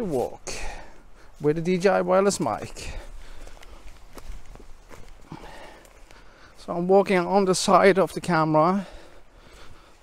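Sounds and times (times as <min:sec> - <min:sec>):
footsteps of person walking: 0:00.0 - 0:08.0.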